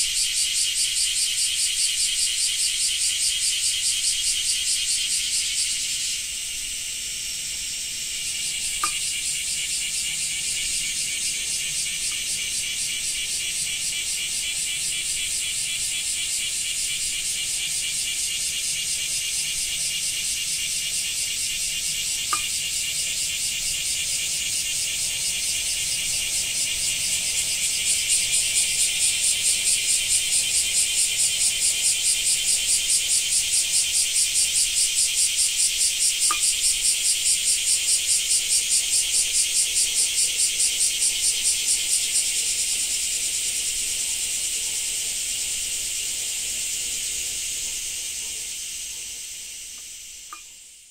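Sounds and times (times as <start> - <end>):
cicadas calling: 0.0 - 50.9.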